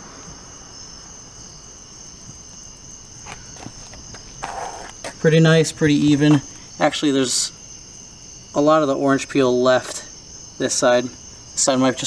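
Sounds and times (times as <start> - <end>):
high-pitched whine: 0.0 - 7.5
low hum and hiss: 0.0 - 12.0.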